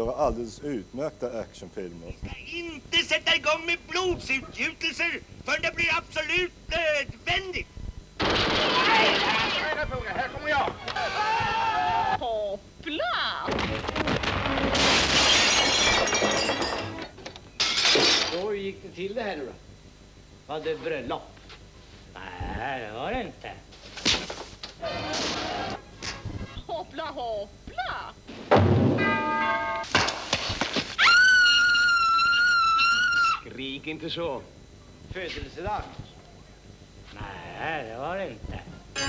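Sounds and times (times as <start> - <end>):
glass shattering: 8.2 - 9.9, 14.4 - 18.4
glass pieces tinkling: 14.8 - 18.4
held orchestral chord: 29.0 - 29.9.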